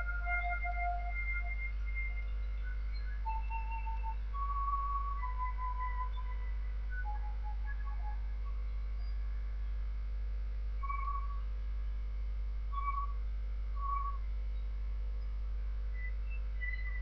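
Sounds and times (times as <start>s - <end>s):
soft whistle-like notes: 0.0s - 9.3s, 10.8s - 11.5s, 12.7s - 13.2s, 13.8s - 17.0s
steady low hum: 0.0s - 17.0s.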